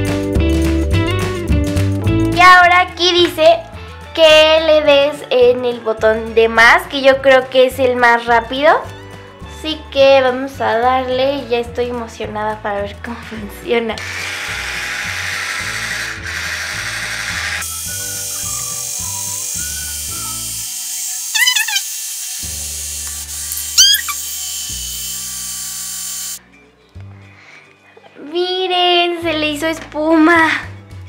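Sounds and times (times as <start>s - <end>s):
background music with bass: 0.0s - 14.0s
toy blender whirring: 14.0s - 26.4s.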